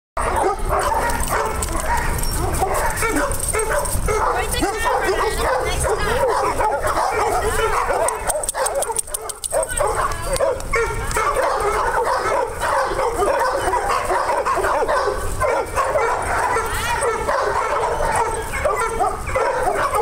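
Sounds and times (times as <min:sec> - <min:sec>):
many dogs barking and yipping: 0:00.2 - 0:20.0.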